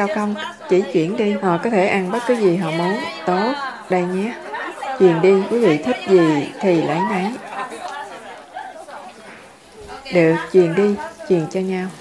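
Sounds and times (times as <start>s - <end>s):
murmur of many people talking: 0.0s - 12.0s.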